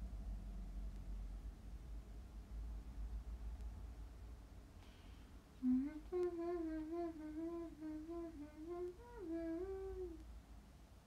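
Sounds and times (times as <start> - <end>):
woman humming a tune: 5.6 - 10.2.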